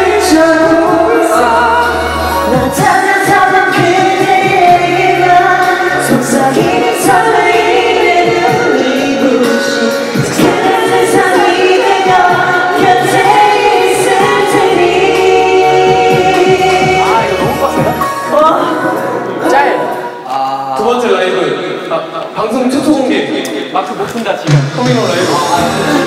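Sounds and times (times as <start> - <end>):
men singing into microphones: 0.0 - 18.1, 24.8 - 26.0
pop backing track with bass: 0.0 - 20.9, 23.4 - 26.0.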